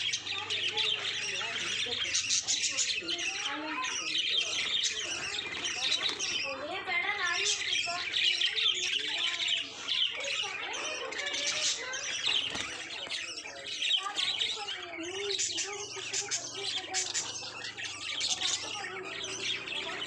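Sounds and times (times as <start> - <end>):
budgerigars chirping: 0.0 - 20.0.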